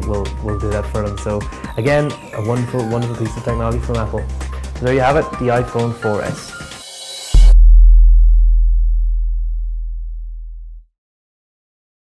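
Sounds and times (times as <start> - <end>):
background music: 0.0 - 7.6
deep electronic bass tone: 7.4 - 10.9.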